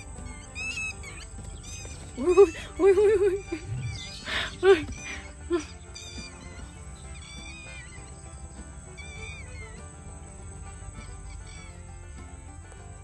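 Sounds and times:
high-pitched bird chirps: 0.0s - 10.0s, 10.6s - 12.1s
soft background music: 0.0s - 13.0s.

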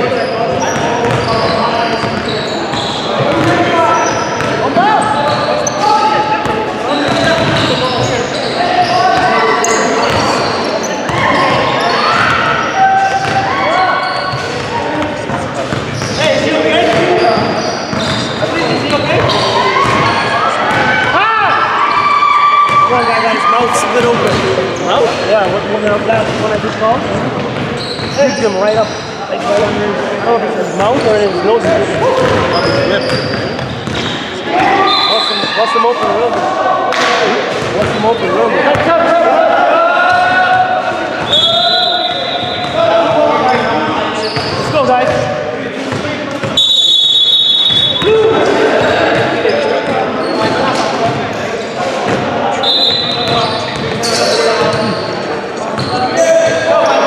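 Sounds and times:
basketball bouncing on wooden floor: 0.8s - 1.4s, 3.2s - 3.6s.

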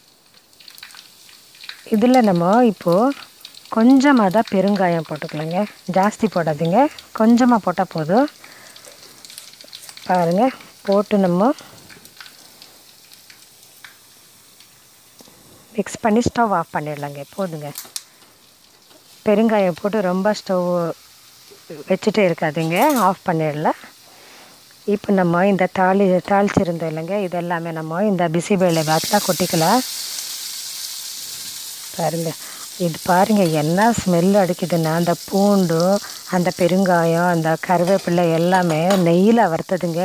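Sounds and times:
garlic sizzling in oil: 0.0s - 40.0s.

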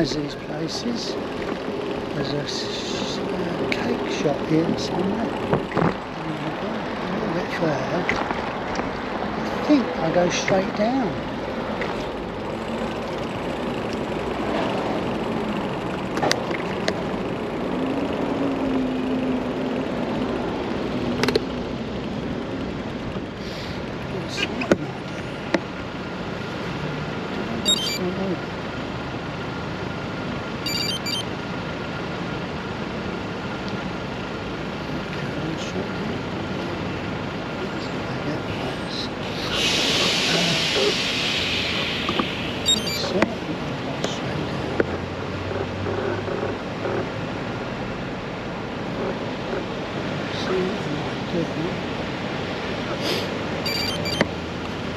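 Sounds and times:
cars passing and idling: 0.0s - 54.9s
road noise hiss: 0.0s - 54.9s
loud hiss: 39.2s - 42.7s.

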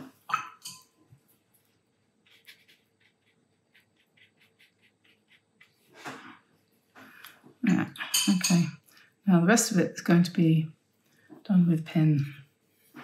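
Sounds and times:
brush strokes on paper: 1.2s - 6.7s, 12.4s - 13.0s.

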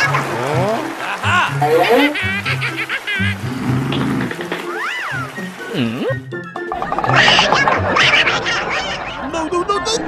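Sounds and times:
comic pitch glide effect: 1.6s - 2.3s.

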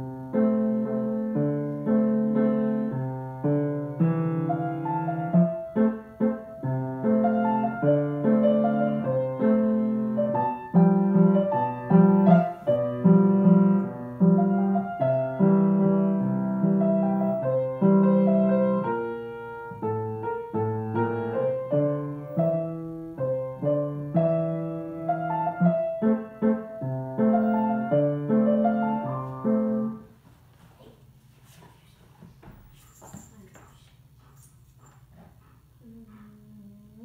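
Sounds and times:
grand piano playing slow piece: 0.0s - 30.1s.

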